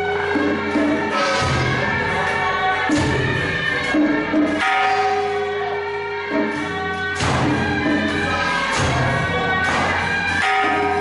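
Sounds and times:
bell-like ringing tones: 4.4s - 7.0s, 10.0s - 11.0s.

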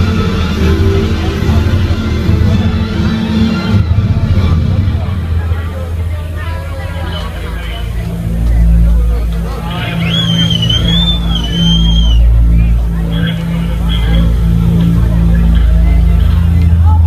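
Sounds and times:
crowd chatter: 0.0s - 17.0s
electric guitars and bass ringing: 0.0s - 17.0s
held low bass note: 0.0s - 17.0s
wavering high whistle: 9.7s - 13.6s.

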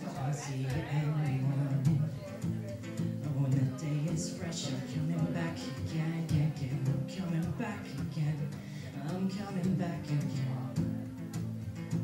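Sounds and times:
acoustic guitar strumming chords: 0.0s - 12.0s.

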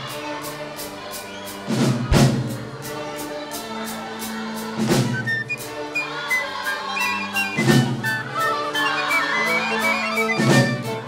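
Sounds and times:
orchestral strings over steady beat: 0.0s - 11.0s.

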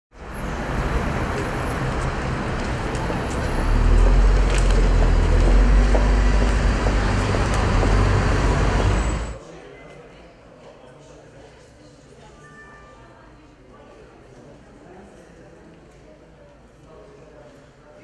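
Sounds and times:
passing vehicles hum: 0.2s - 9.4s
deep rumble: 0.4s - 9.4s.

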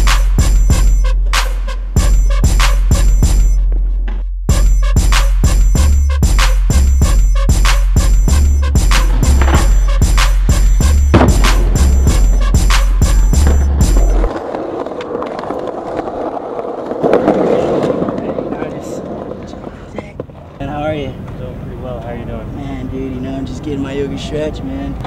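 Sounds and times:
music with heavy bass beat: 0.0s - 3.8s, 4.5s - 14.3s
skateboard rolling on concrete: 7.6s - 22.6s.

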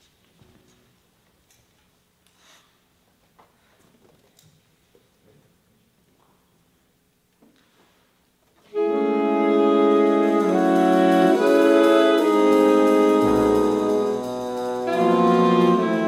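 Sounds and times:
big band jazz chords: 8.7s - 16.0s
deep bass note: 13.2s - 14.9s.

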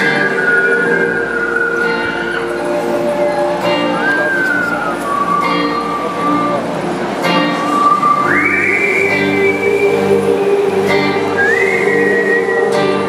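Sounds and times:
high whistled melody: 0.0s - 6.8s, 7.5s - 13.0s
live band sustained low chord: 0.0s - 13.0s.

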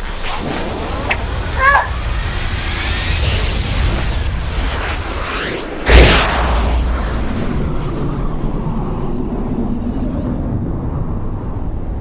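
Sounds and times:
low rumble: 0.1s - 12.0s
loud bang: 0.4s - 8.7s.

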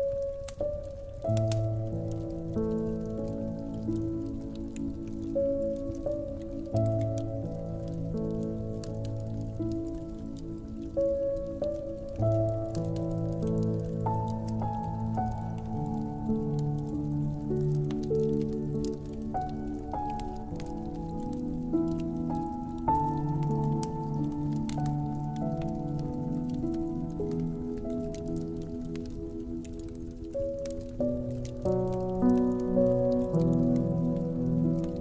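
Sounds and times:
slow piano melody: 0.0s - 35.0s
wood fire crackling: 0.0s - 35.0s.

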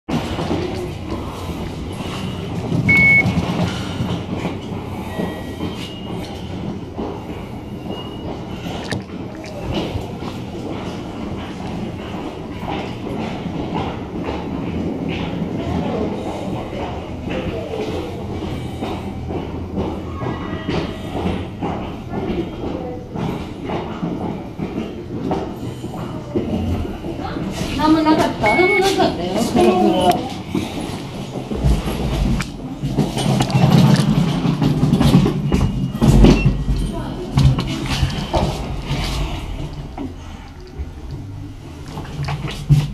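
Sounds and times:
train wheels rumbling on rails: 0.1s - 42.9s
short high electronic beep: 2.9s - 3.3s
continuous low rumble: 29.5s - 42.9s.

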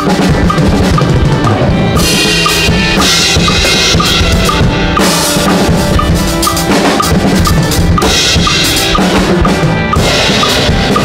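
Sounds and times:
drum kit playing loudly: 0.0s - 11.0s.

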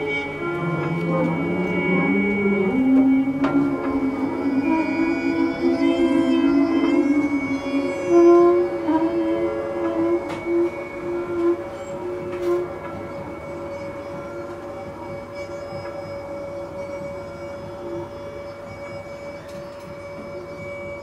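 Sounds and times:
bowed double basses: 0.0s - 17.8s
clarinet: 0.0s - 21.0s
saxophone: 0.0s - 21.0s.

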